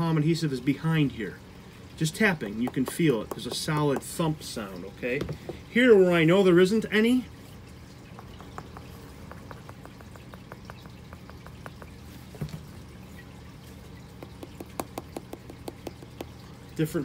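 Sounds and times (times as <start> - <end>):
fingertips tapping leather glove: 2.4 - 4.2, 8.1 - 12.7, 14.1 - 16.4.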